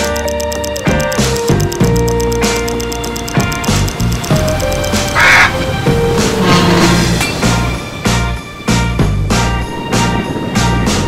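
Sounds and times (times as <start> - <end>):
upbeat background music: 0.0 - 11.0
parrot squawk: 5.1 - 5.7.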